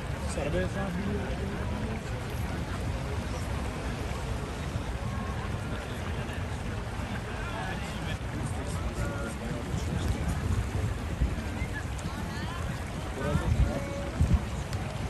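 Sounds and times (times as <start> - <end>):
chatter of voices: 0.0 - 15.0
wind buffeting microphone: 0.0 - 15.0.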